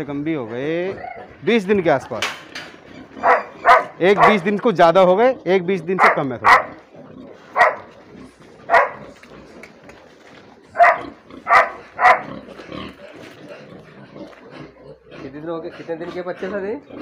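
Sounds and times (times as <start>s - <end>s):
animal giving sharp calls: 2.9s - 4.5s, 5.9s - 7.9s, 8.6s - 9.7s, 10.7s - 13.7s.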